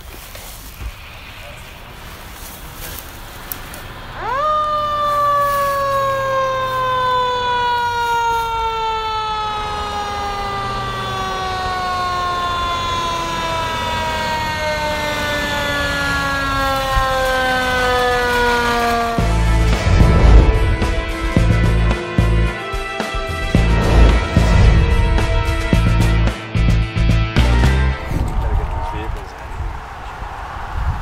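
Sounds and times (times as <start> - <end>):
fire engine siren wailing: 1.4 - 28.2
outro music: 19.2 - 28.0.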